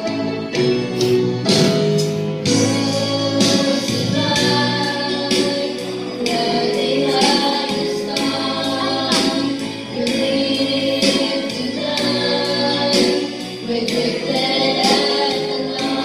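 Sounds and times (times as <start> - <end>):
instrumental backing with beat: 0.0 - 16.0
choir singing gospel song: 2.5 - 16.0.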